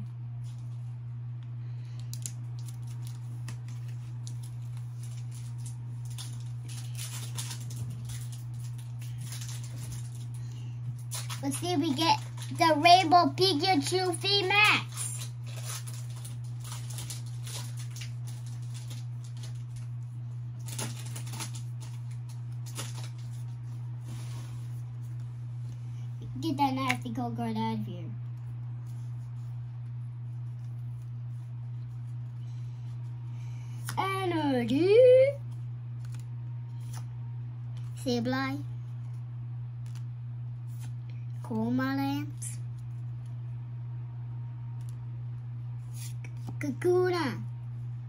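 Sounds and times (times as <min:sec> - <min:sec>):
steady low hum: 0:00.0 - 0:48.0
cards rustling: 0:01.8 - 0:25.7, 0:35.9 - 0:37.1, 0:39.8 - 0:40.1.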